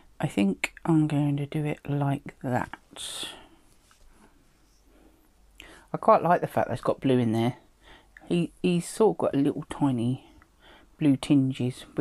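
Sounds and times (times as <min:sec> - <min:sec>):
woman speaking: 0:00.2 - 0:03.5, 0:05.9 - 0:07.6, 0:08.3 - 0:10.3, 0:11.0 - 0:12.0.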